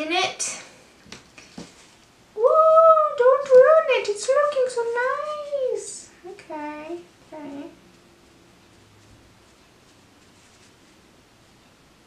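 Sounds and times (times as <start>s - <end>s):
woman exclaiming woo: 2.4s - 3.2s.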